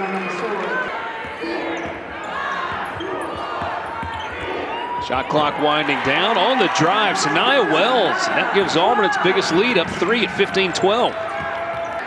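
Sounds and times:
arena crowd noise: 0:00.0 - 0:12.0
basketball dribbling on hardwood: 0:01.2 - 0:04.5, 0:09.9 - 0:12.0.

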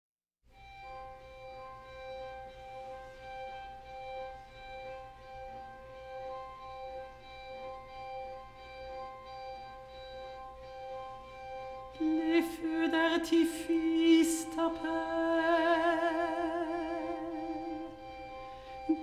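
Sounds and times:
string quartet sustained chord: 0:00.6 - 0:19.0.

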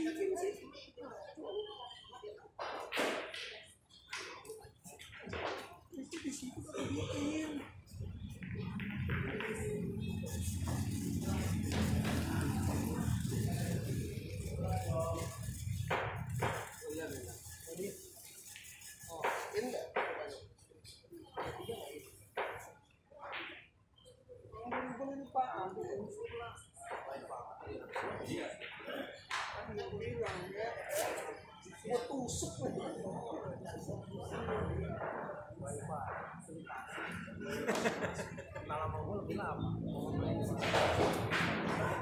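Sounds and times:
indistinct voices talking: 0:06.0 - 0:19.6.

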